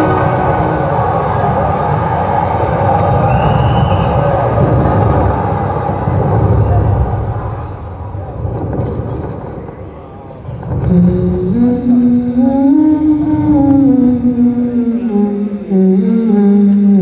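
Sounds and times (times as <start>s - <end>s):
dense low rumble: 0.0s - 17.0s.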